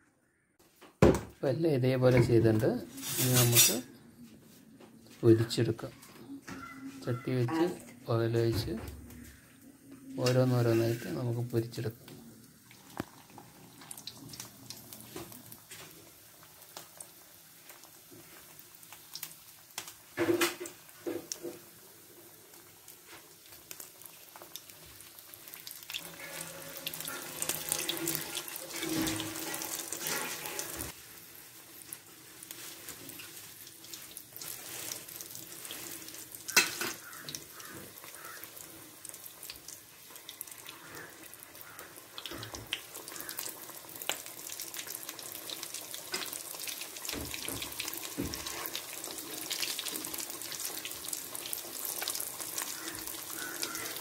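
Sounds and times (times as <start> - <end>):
food deep-frying in oil: 6.6 - 54.0.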